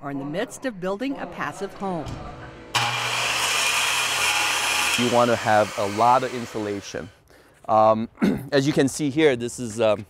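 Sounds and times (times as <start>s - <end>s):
circular saw cutting wood: 2.7s - 7.2s.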